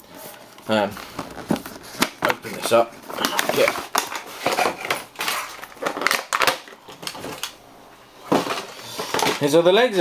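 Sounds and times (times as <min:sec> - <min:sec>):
packaging clicks and knocks: 0:01.2 - 0:07.6.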